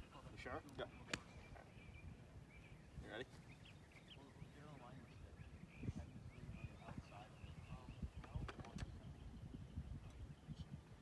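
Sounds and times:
faint bird chirps: 0.0 - 10.9.

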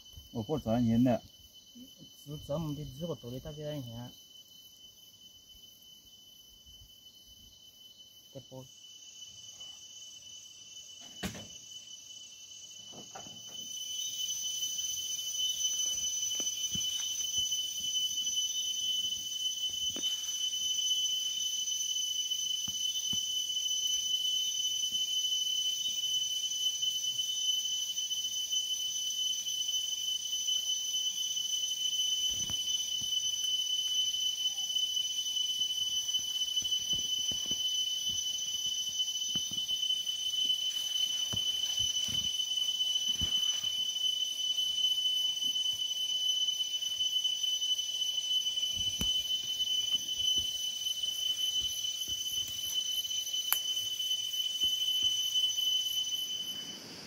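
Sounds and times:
insects chirping: 0.0 - 57.0.

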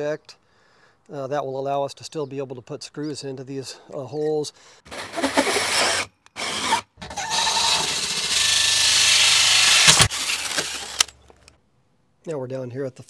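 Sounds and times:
drill with hole saw cutting: 4.9 - 11.1.

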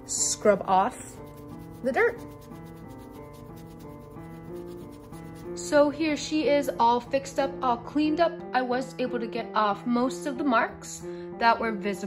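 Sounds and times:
eraser scrubbing plastic: 0.0 - 5.9
faint background music: 0.0 - 12.0.

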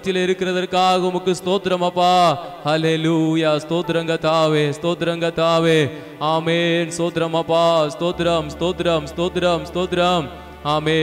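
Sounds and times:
man chanting prayer into microphone: 0.0 - 11.0
steady low held tone: 8.0 - 11.0.

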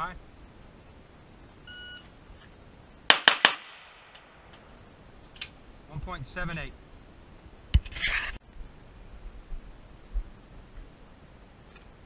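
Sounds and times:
pistol shots: 3.1 - 4.1.

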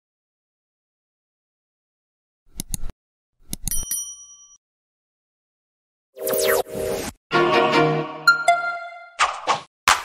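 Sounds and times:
mouse clicks: 2.5 - 2.9.

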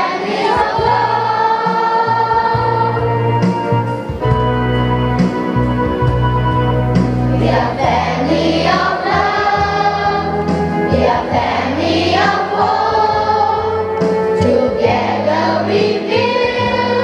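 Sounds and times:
children's choir singing gospel: 0.0 - 4.2, 7.0 - 17.0
instrumental accompaniment: 0.0 - 17.0.

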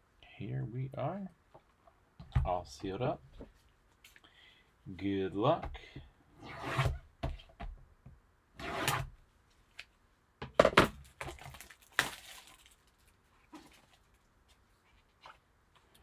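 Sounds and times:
shrink wrap crinkling and tearing: 11.0 - 14.2.

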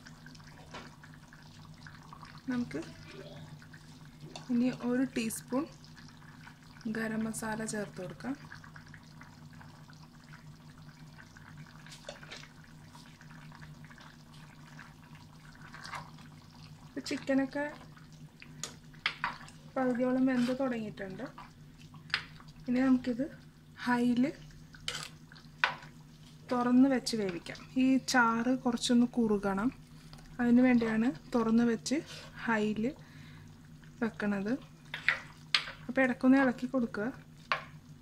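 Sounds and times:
woman speaking: 2.5 - 3.0, 4.5 - 5.7, 19.8 - 21.4, 22.7 - 24.4, 26.5 - 29.8, 30.4 - 33.0, 35.9 - 37.2.

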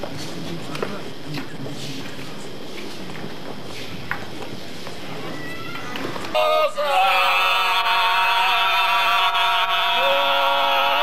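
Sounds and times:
murmur of street crowd: 0.0 - 6.8
group singing a cappella: 6.3 - 11.0.

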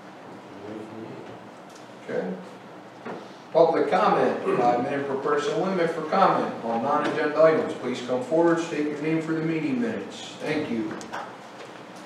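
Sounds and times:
people talking: 0.6 - 1.3, 3.6 - 11.0.

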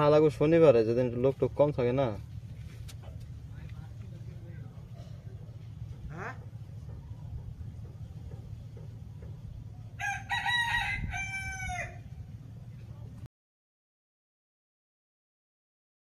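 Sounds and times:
steady low rumble: 0.0 - 13.3
rooster crowing: 9.9 - 12.2.

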